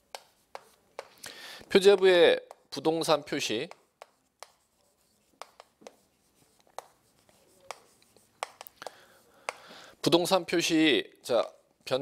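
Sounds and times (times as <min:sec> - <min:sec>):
chalk tapping on board: 0:00.0 - 0:09.7
chalk scratching on chalkboard: 0:00.1 - 0:01.2, 0:01.8 - 0:08.8.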